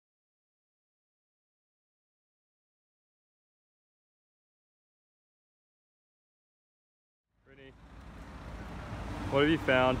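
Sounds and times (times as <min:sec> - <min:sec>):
traffic rumble: 0:07.3 - 0:10.0.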